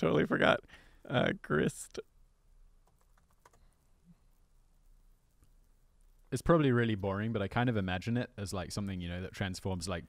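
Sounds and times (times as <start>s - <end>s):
typing on laptop keyboard: 2.8s - 3.6s.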